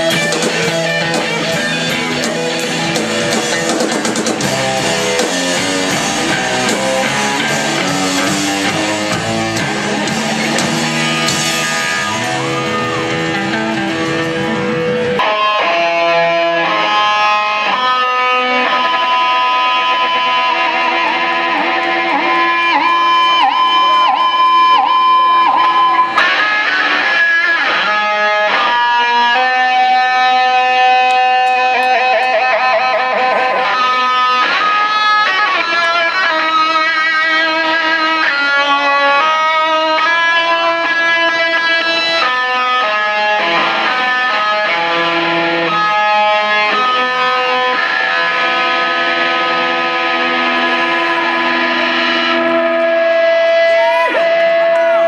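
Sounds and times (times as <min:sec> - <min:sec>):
electric guitar lead with vibrato: 0:00.0 - 0:55.0.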